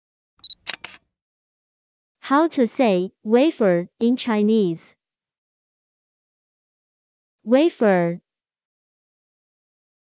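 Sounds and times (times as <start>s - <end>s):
quick sharp clicks: 0.4s - 1.0s.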